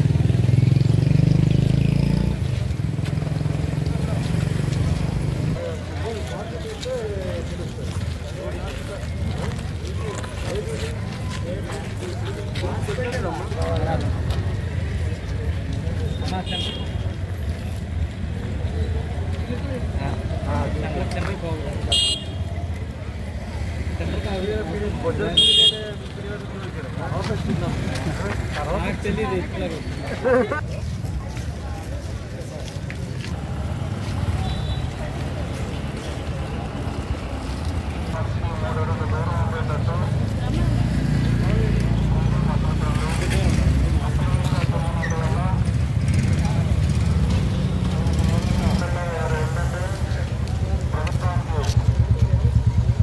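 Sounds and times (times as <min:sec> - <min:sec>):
low street rumble: 0:00.0 - 0:53.0
motor scooter engines humming: 0:00.0 - 0:53.0
faint voices: 0:01.7 - 0:53.0
people talking: 0:03.7 - 0:17.3, 0:18.2 - 0:53.0
vehicle horn toot: 0:21.9 - 0:22.4, 0:25.4 - 0:26.0, 0:34.4 - 0:34.9.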